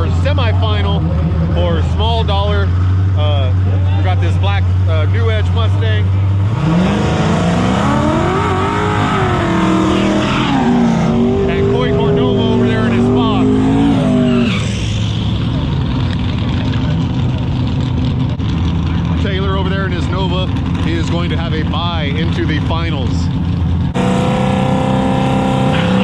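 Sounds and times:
car engine at high revs: 0.0 - 26.0.

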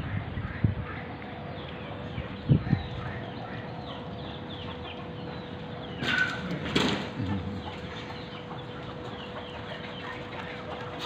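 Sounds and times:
birds chirping: 0.0 - 11.0
outdoor background hum: 0.0 - 11.0.

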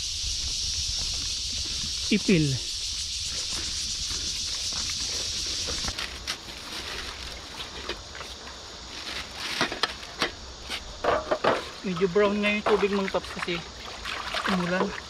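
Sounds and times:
insect chorus: 0.0 - 15.0
water splashing lightly: 12.7 - 15.0.

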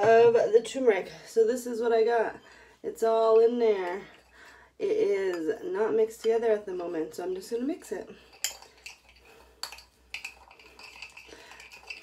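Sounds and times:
metal spoon stirring in ceramic bowl: 8.2 - 12.0.

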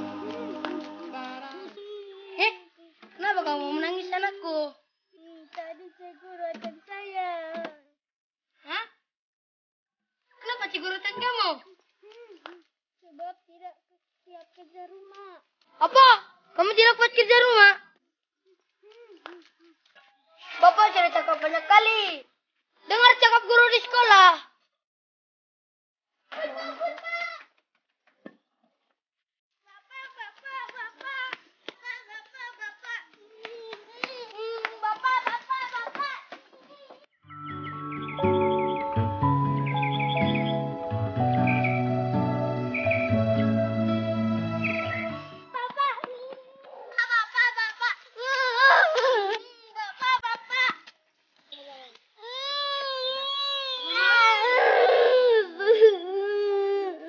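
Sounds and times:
girl crying and wailing: 48.2 - 49.8, 52.2 - 57.0.

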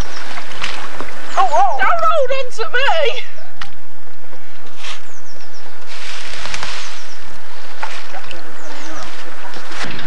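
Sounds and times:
water sloshing and splashing: 0.0 - 1.4, 5.9 - 10.0.

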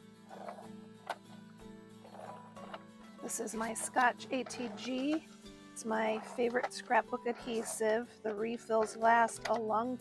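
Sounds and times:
soft background music: 0.0 - 10.0
tape applicator scratchy rasp: 0.3 - 1.4, 2.0 - 9.5.

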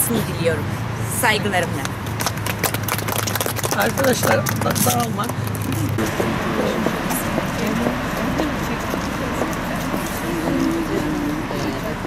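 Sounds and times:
people chattering: 0.0 - 12.0
street noise: 0.0 - 12.0.

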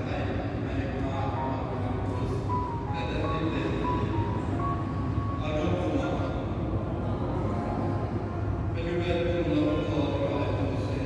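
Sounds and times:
slow hymn melody: 1.0 - 6.4.

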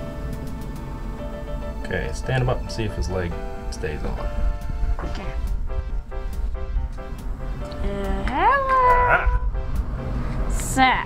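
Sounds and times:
background music: 0.0 - 11.0
high voice-like call: 8.5 - 9.4.

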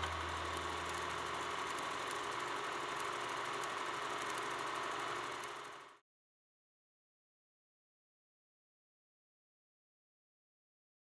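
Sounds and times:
small machine clattering: 0.0 - 6.0.

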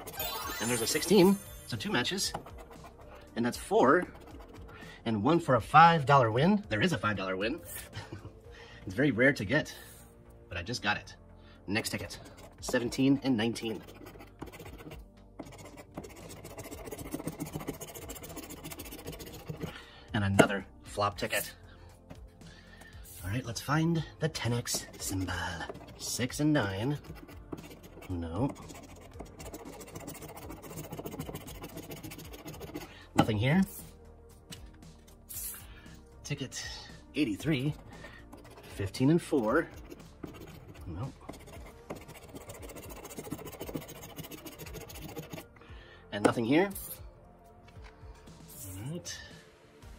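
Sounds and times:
scratching lottery ticket: 0.0 - 1.3, 1.9 - 4.8, 11.8 - 19.8, 24.4 - 32.9, 37.3 - 45.5.

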